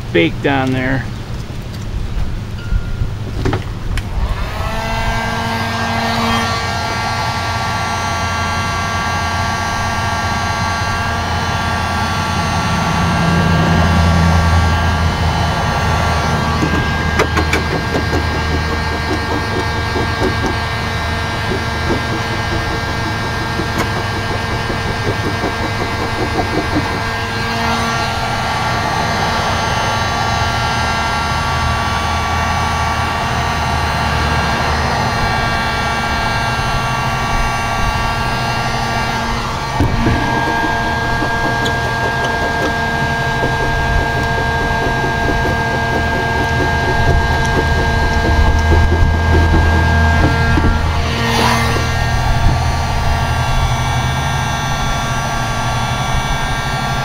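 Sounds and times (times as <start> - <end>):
heat gun fan whine: 0.0 - 57.0.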